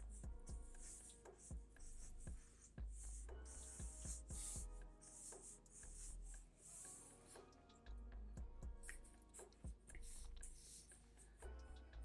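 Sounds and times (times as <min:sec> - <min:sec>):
quiet background music: 0:00.0 - 0:12.0
marker scratching on paper: 0:00.1 - 0:07.5, 0:08.9 - 0:10.9.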